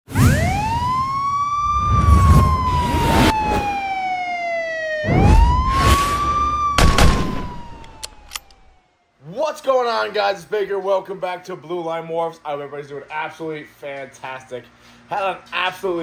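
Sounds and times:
police siren wail: 0.1s - 9.1s
whooshing hits with low booms: 5.1s - 7.8s.

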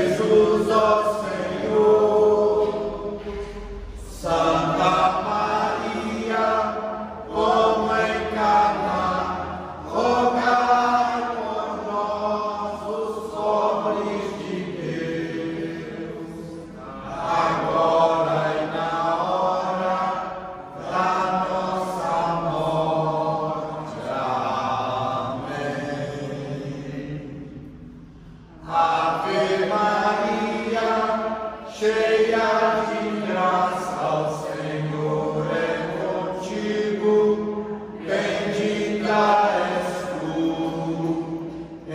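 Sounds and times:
group reciting prayers in unison: 0.0s - 41.9s.

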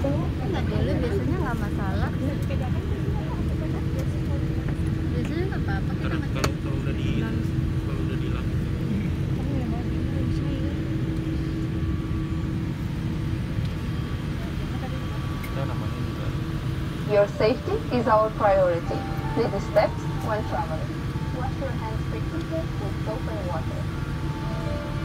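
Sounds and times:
airliner cabin engine rumble: 0.0s - 25.0s
steady hum: 0.0s - 25.0s.

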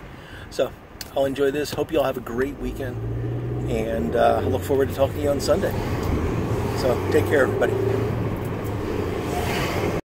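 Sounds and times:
car engine hum inside cabin: 2.0s - 10.0s.

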